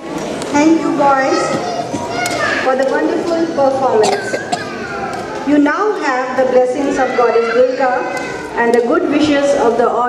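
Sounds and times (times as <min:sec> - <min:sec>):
children talking and calling out: 0:00.0 - 0:10.0.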